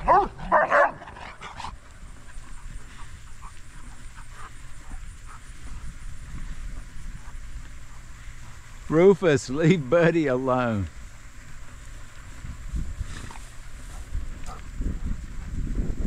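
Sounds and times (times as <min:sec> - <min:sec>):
dog barking and yipping: 0:00.0 - 0:01.2.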